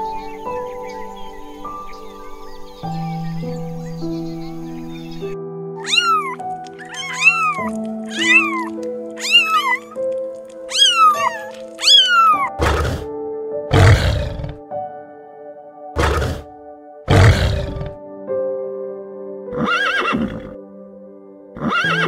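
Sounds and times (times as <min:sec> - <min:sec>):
background music with held notes: 0:00.0 - 0:22.0
kittens meowing: 0:05.8 - 0:13.0
lion growls: 0:12.5 - 0:13.1, 0:13.7 - 0:14.6, 0:16.0 - 0:16.5, 0:17.1 - 0:18.0.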